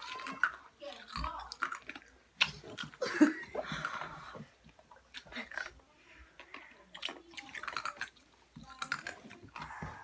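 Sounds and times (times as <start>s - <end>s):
girls giggling and laughing: 3.0s - 4.4s.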